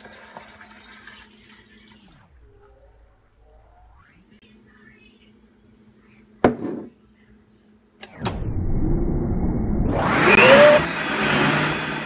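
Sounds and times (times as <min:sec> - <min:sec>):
blender motor grinding fruit: 0:10.0 - 0:12.0.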